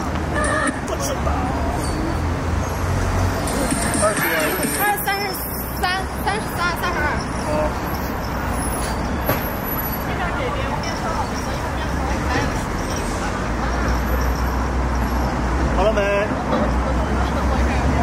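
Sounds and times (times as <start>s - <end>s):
road traffic rumble: 0.0s - 18.0s.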